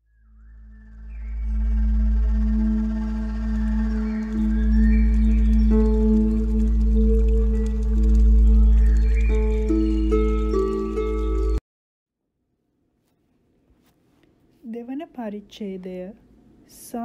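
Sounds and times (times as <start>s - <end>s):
ambient music drone: 0.1s - 11.6s.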